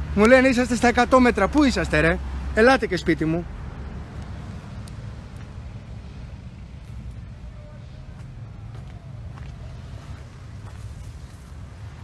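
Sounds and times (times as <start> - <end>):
low outdoor rumble: 0.0 - 12.0
faint distant voice: 7.2 - 9.9.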